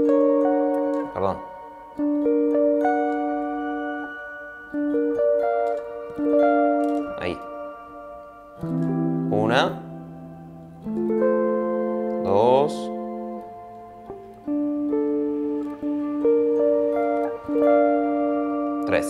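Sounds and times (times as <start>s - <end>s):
clean electric guitar chords: 0.0s - 19.0s.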